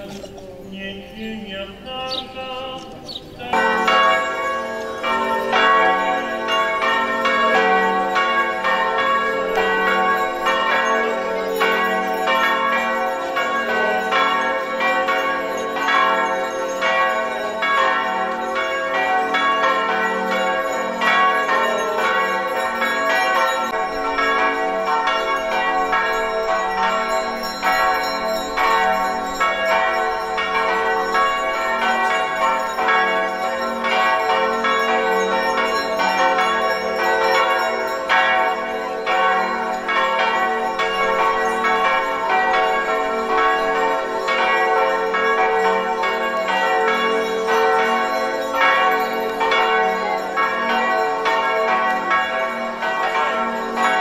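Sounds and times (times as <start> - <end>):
bells ringing: 0.0 - 54.0.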